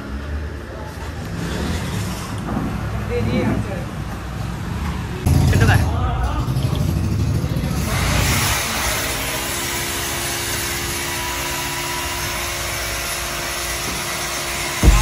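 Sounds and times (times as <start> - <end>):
vehicle engine and road noise: 0.0 - 15.0.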